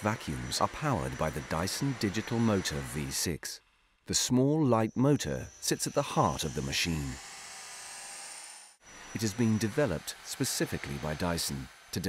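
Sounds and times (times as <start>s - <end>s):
vacuum motor whine: 0.0s - 3.2s, 5.3s - 12.0s.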